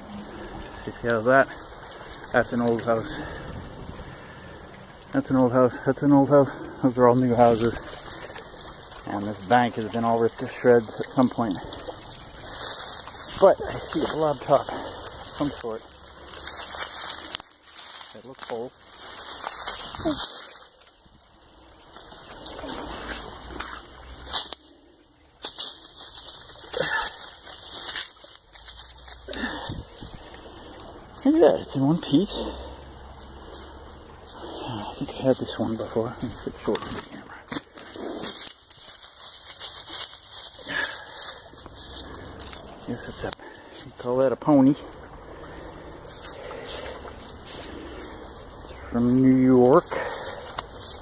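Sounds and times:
dry grass crackling and rustling: 0:00.0 - 0:51.0.

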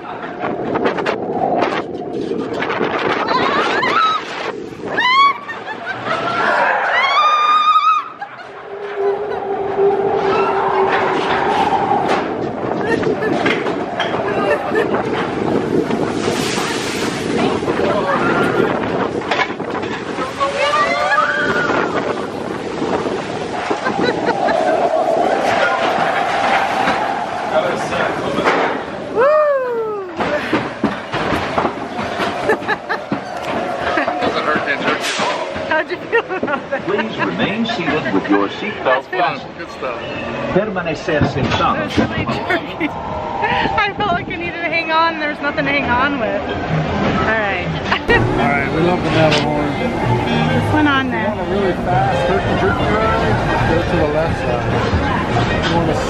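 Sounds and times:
wind rushing: 0:00.0 - 0:37.2, 0:41.2 - 0:56.0
roller coaster rumbling on track: 0:00.0 - 0:56.0
riders screaming and whooping: 0:03.0 - 0:15.6, 0:17.8 - 0:19.1, 0:20.1 - 0:30.4.

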